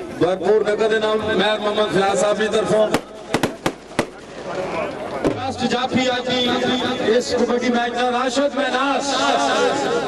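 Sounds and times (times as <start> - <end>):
low murmur of voices: 0.0 - 10.0
sharp cracks: 2.9 - 5.6.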